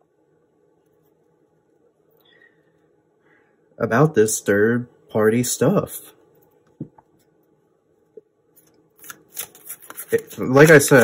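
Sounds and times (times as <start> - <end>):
cards rustling and clicking: 8.6 - 11.0.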